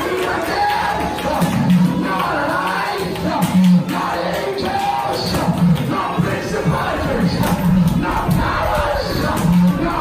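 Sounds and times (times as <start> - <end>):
congregation shouting along: 0.0 - 10.0.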